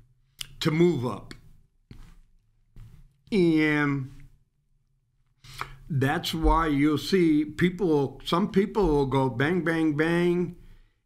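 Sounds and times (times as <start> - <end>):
man speaking: 0.4 - 1.6, 3.2 - 4.4, 5.8 - 10.6.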